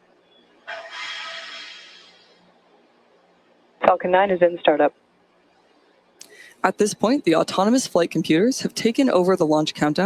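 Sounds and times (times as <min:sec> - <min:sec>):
rocket venting hissing gas: 0:00.7 - 0:02.2.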